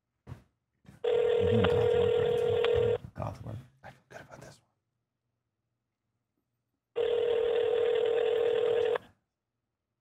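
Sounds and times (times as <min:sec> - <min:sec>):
telephone ringback tone: 0:01.0 - 0:03.0, 0:07.0 - 0:09.0
faint voice sounds: 0:01.4 - 0:04.6.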